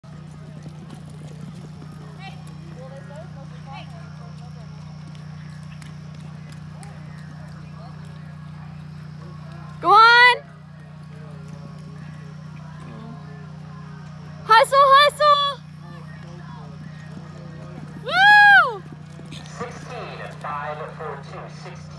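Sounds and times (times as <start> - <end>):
horse hoofbeats galloping: 0.0 - 21.9
steady low hum: 0.0 - 21.9
spectators' voices: 0.2 - 21.9.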